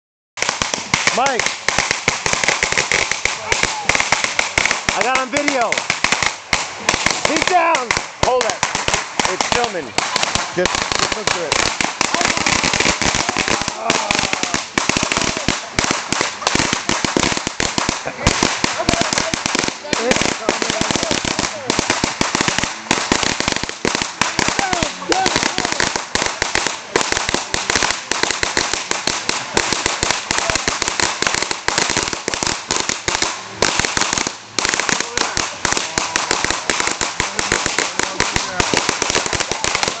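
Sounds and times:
firecrackers banging rapidly: 0.4s - 40.0s.

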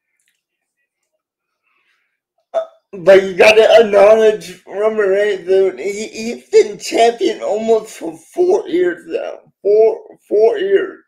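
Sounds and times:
man saying uh: 3.0s - 11.0s.

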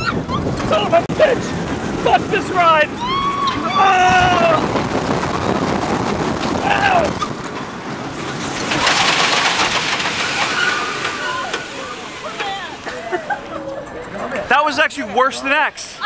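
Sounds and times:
rush of wind: 0.0s - 12.8s
roller coaster on track: 0.0s - 16.0s
hissing rush: 0.7s - 13.0s
rider groaning: 6.6s - 7.3s.

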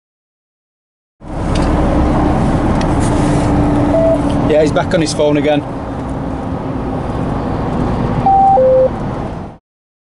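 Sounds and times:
lorry engine and road noise: 1.2s - 9.6s
electronic beeps: 3.9s - 4.2s, 8.2s - 9.0s.

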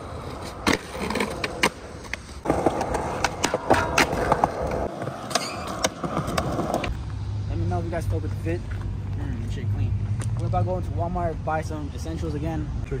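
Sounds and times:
skateboard wheels rolling on concrete: 0.0s - 12.6s
skateboard clacks: 0.4s - 6.9s
skateboard sliding on metal rail: 2.4s - 6.8s.

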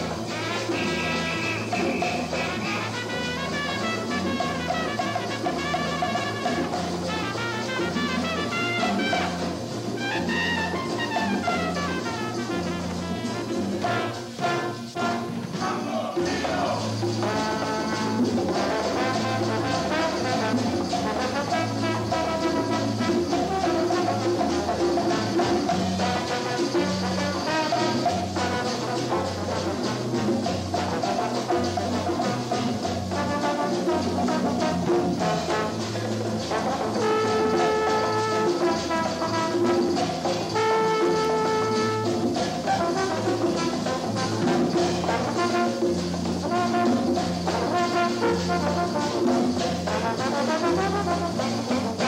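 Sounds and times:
jazz band playing: 0.0s - 52.0s
trumpet and trombone horns: 0.0s - 52.0s.

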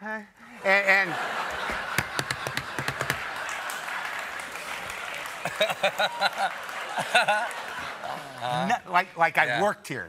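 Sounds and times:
audience laughter: 0.7s - 8.7s
audience applause: 1.0s - 9.0s
hands slapping a desk: 2.0s - 3.2s.

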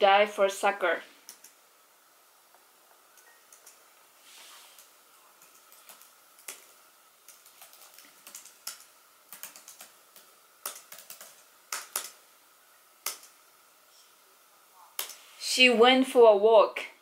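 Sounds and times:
laptop keyboard typing: 1.2s - 1.6s, 3.2s - 3.8s, 4.8s - 12.2s, 13.0s - 13.4s, 15.0s - 15.2s.

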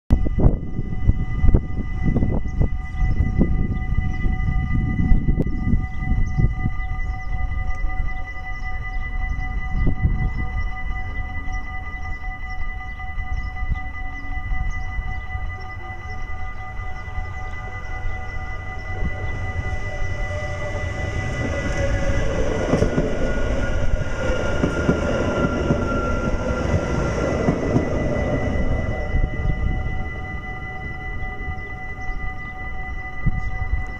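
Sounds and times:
electric train passing: 0.1s - 33.9s
steady high tones: 0.1s - 33.9s
wind on microphone: 0.1s - 33.9s.

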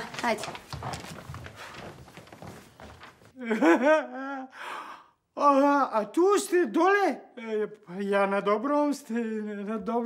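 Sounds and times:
man speaking: 5.4s - 10.0s.

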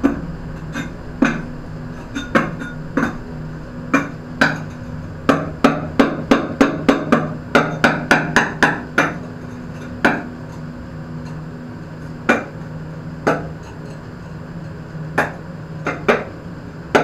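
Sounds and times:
low hum: 0.0s - 6.3s.

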